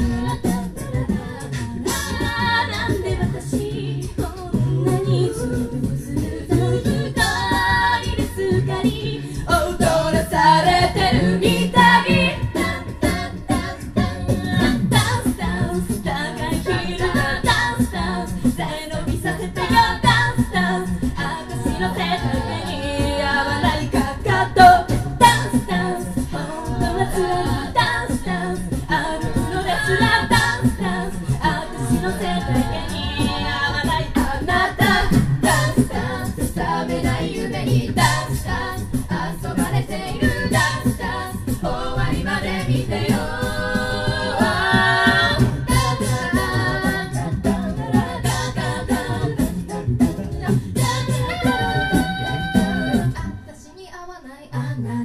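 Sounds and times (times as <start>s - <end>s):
vocal percussion beat: 0.0s - 53.7s
a cappella group singing: 0.0s - 55.0s.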